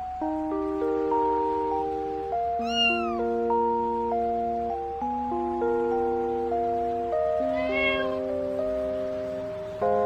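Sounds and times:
background music sustained notes: 0.0s - 10.0s
kitten meow: 2.6s - 3.3s, 7.4s - 8.3s.

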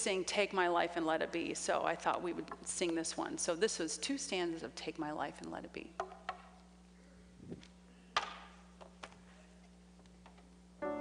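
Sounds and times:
low electrical hum: 0.0s - 11.0s
sharp knock in reverberant room: 8.2s - 8.6s.

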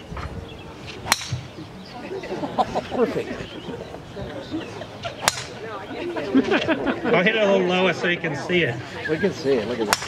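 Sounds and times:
golf club striking ball: 1.0s - 1.5s, 5.2s - 5.6s.

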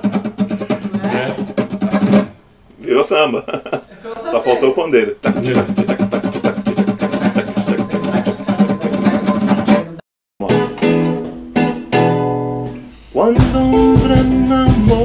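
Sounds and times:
acoustic guitar strummed: 0.0s - 2.5s, 5.2s - 15.0s.

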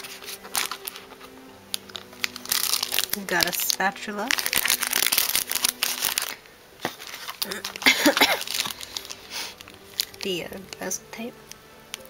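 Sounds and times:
packaging clicks: 0.0s - 12.0s
packaging crinkling: 0.0s - 12.0s.

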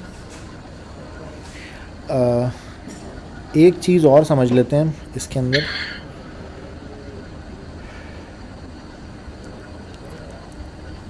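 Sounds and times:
low background hum and rumble: 0.0s - 11.0s.

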